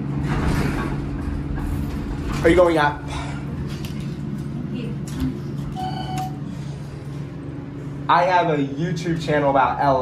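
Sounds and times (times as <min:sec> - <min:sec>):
steady low hum: 0:00.0 - 0:10.0
short electronic beep: 0:05.8 - 0:06.4.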